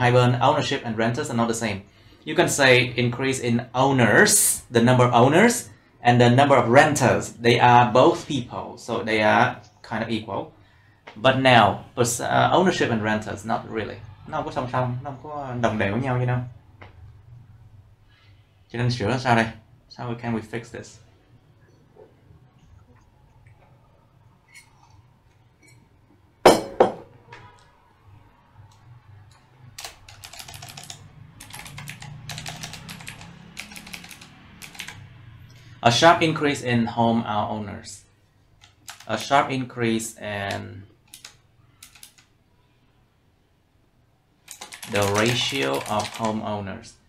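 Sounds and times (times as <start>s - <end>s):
man talking: 0.0s - 10.5s, 11.2s - 16.5s, 18.7s - 21.0s, 35.8s - 38.1s, 39.1s - 40.9s, 44.8s - 47.0s
cup clinking on desk: 26.5s - 27.1s
computer keyboard typing: 28.7s - 35.2s, 38.6s - 39.3s, 40.5s - 42.3s, 44.5s - 46.4s.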